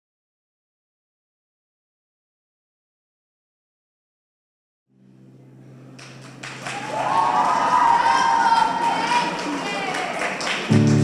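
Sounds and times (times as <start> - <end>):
audience applause: 6.0 - 11.0
drawn-out cheer: 6.4 - 10.9.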